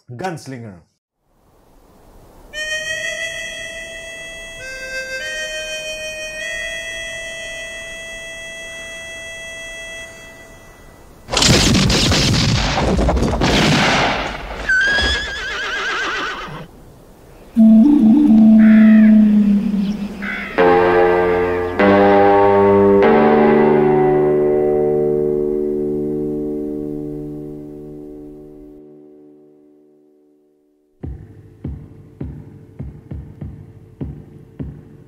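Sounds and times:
faint hiss: 1.2 - 11.3, 14.6 - 21.7
harmonica long held note: 2.5 - 11.3, 17.6 - 29.4
horse whinnying: 14.6 - 16.7.

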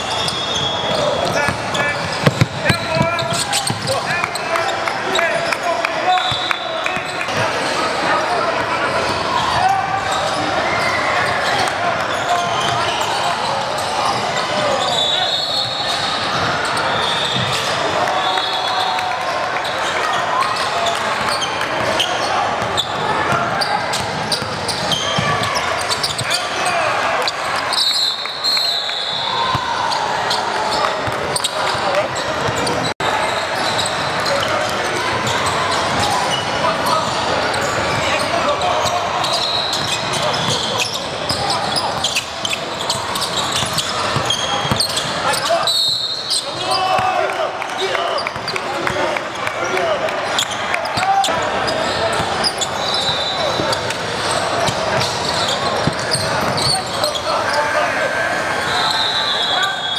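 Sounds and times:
sneaker squeaks: 0.0 - 47.1, 48.0 - 57.8
crowd chattering: 0.0 - 59.9.

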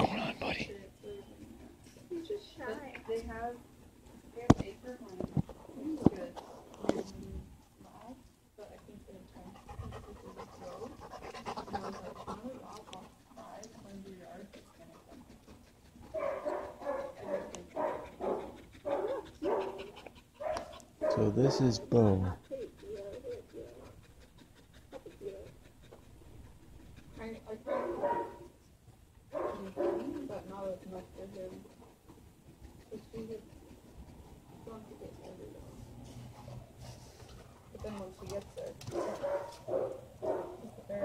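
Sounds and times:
dog panting: 0.0 - 28.7, 29.3 - 41.0.

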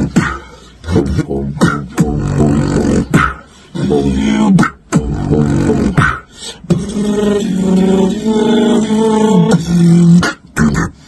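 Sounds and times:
beatbox percussive hits: 0.0 - 11.0
held pitched vocal notes: 0.0 - 11.0.

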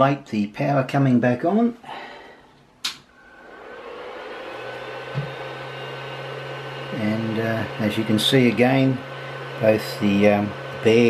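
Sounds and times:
thin steady whine: 3.2 - 11.0
printer fans whirring: 3.3 - 11.0.

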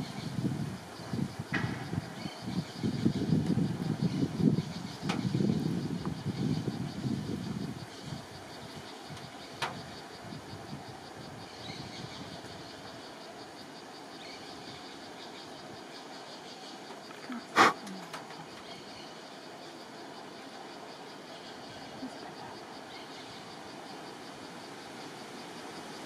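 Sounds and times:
outdoor background noise: 0.0 - 26.0.

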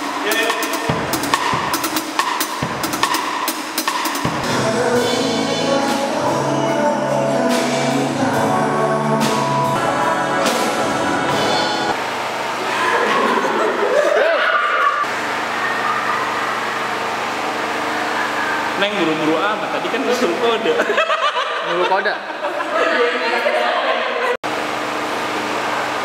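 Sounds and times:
person giggling and squealing: 12.6 - 16.7.

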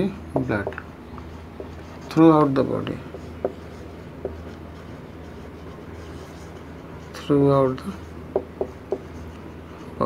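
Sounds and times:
marker pen writing on whiteboard: 0.4 - 10.0.

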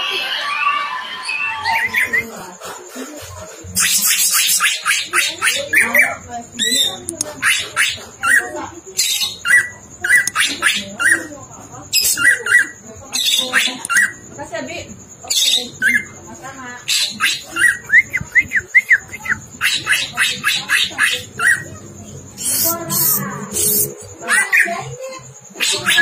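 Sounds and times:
bird singing chirps and whistles: 16.9 - 20.1.

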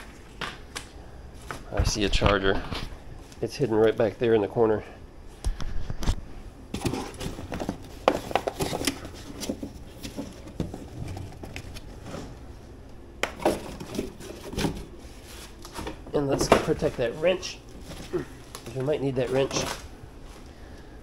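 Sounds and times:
cardboard and foam rustling: 6.7 - 12.6, 13.4 - 20.4.

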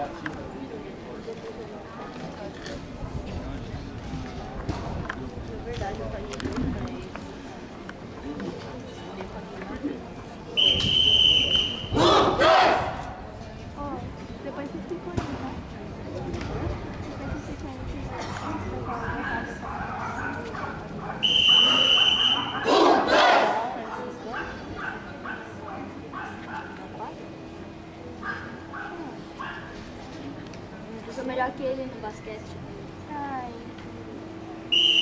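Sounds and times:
onlookers chattering: 0.0 - 35.0
whistle blast: 10.6 - 12.0, 21.2 - 22.7, 34.7 - 35.0
children shouting: 12.0 - 12.9, 21.6 - 23.7.

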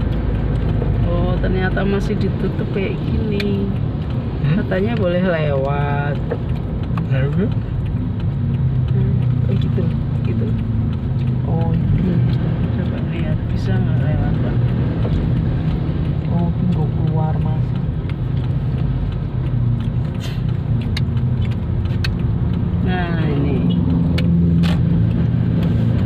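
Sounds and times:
car engine and tyres humming: 0.0 - 26.0
sharp clicks: 0.0 - 26.0.

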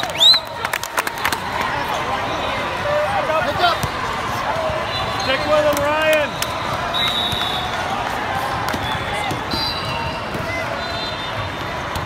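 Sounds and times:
volleyballs being hit and bouncing: 3.4 - 10.8, 11.5 - 12.0.

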